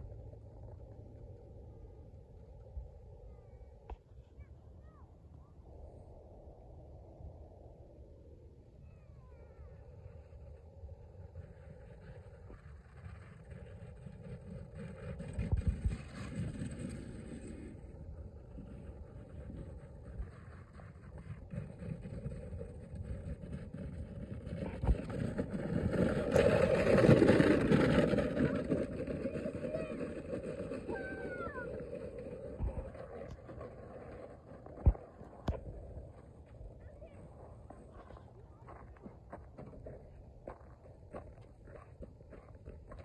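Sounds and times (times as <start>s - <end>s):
plastic sled sliding over snow: 9.2s - 43.0s.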